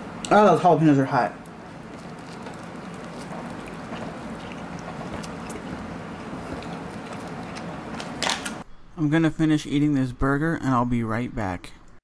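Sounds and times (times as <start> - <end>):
person chewing with mouth smacks: 1.9 - 8.1.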